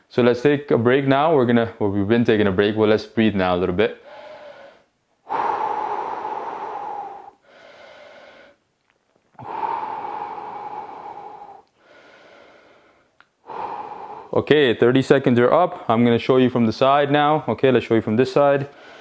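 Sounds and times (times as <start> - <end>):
man breathing deeply: 4.0 - 8.6, 9.4 - 14.5, 18.7 - 19.0.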